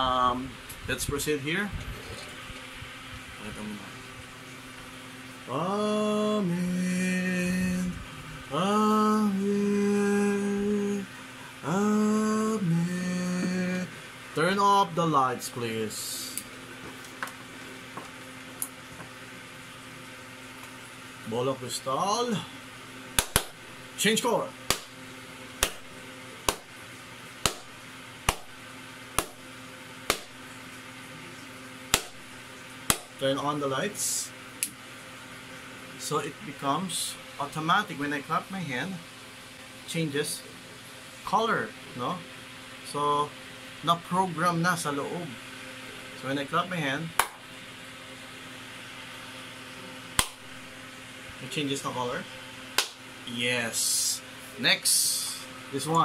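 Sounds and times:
faint steady hum: 0.0 - 56.0
hand claps: 23.2 - 23.6, 24.7 - 24.9, 25.6 - 25.9, 26.5 - 26.7, 27.4 - 27.7, 28.3 - 28.6, 29.2 - 29.4, 30.1 - 30.4, 31.9 - 32.2, 32.9 - 33.2, 47.2 - 47.4, 50.2 - 50.5, 52.8 - 53.0.

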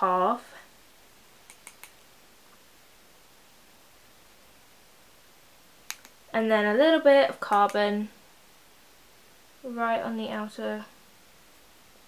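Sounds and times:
faint room hiss: 0.0 - 12.0
sharp click: 1.5 - 2.0, 5.8 - 6.2.

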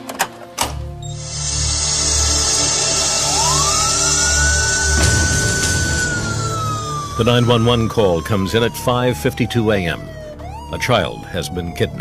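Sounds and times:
background music with drone: 0.0 - 12.0
emergency siren wailing: 1.1 - 12.0
sudden noise: 1.3 - 8.9.

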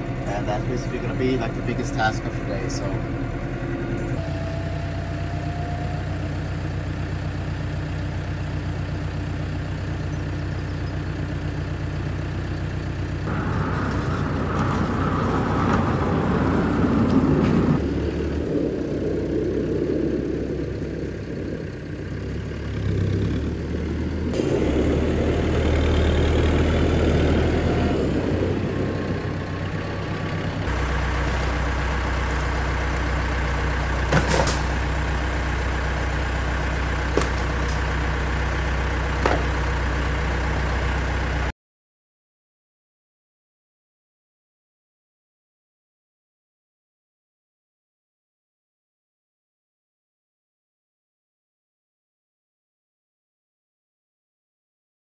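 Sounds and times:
tractor diesel engine running: 0.0 - 41.5.

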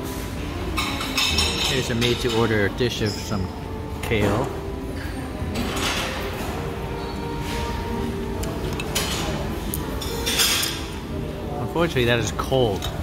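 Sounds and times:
background chatter: 0.0 - 13.0
faint music: 0.0 - 13.0
dishes and cutlery clinking: 0.1 - 11.3.

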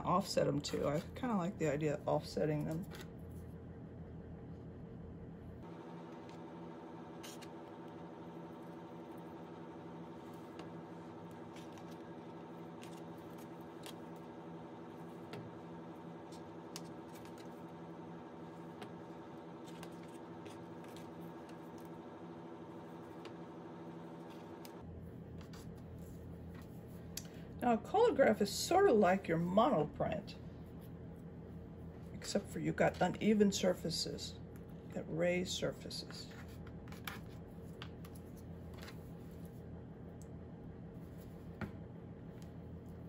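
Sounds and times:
steady hum: 0.0 - 43.0.

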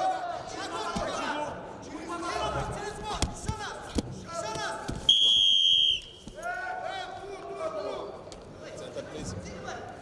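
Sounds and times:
coaches and crowd shouting: 0.0 - 4.9
referee's whistle blast: 5.1 - 6.2.

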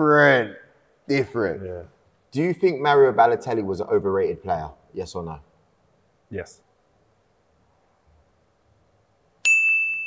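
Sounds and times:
bright ding: 9.4 - 10.0.

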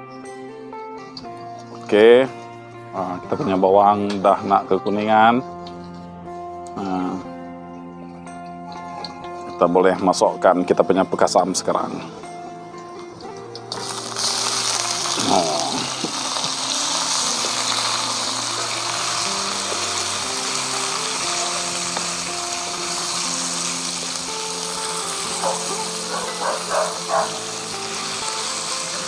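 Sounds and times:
background music: 0.0 - 29.0
fish sizzling in hot oil: 1.1 - 2.0, 13.2 - 29.0.

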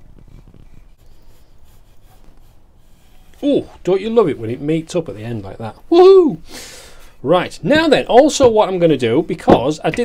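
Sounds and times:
scribe scratching wood: 0.2 - 5.8.

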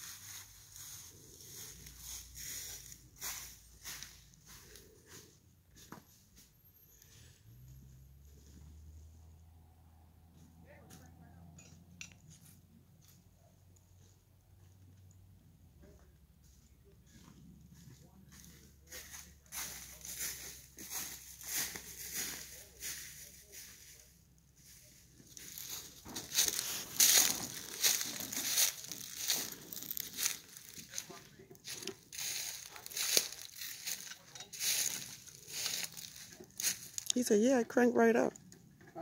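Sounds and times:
footsteps crunching through dry leaves: 0.0 - 5.4, 18.3 - 37.7.

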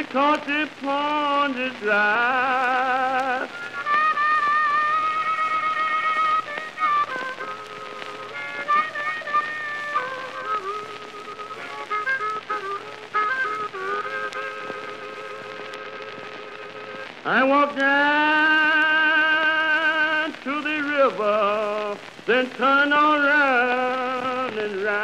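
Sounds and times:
recording surface hiss: 0.0 - 25.0
blues harmonica wailing: 1.4 - 21.8.

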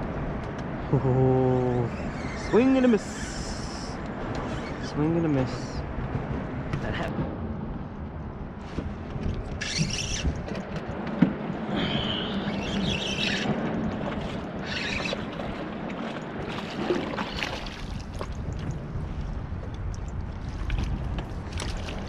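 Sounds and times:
water noise: 0.0 - 22.0
wind: 0.0 - 22.0
fishing reel rasping: 9.6 - 10.3, 12.2 - 13.5
fishing reel whirring: 9.6 - 10.4, 11.8 - 13.5, 14.6 - 15.3
fish splashing: 16.4 - 18.5.

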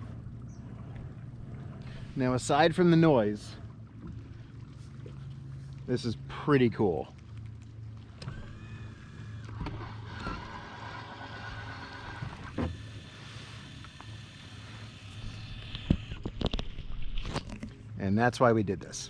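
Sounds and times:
electric motor mechanism whining: 8.2 - 16.3.

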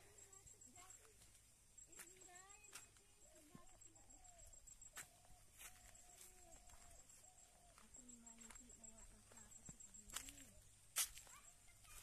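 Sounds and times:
faint wavering animal calls: 3.2 - 10.7.

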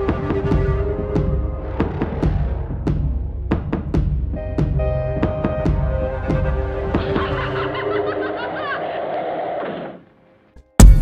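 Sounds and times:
synth drone: 0.0 - 8.7.

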